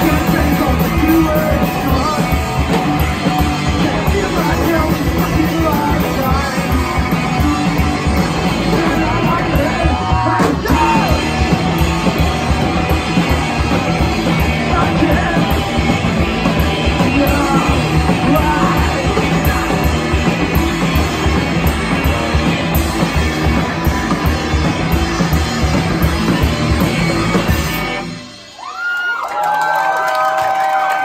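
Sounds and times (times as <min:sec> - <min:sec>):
live rock band playing: 0:00.0 - 0:29.2
crowd yelling and whooping: 0:28.2 - 0:31.0.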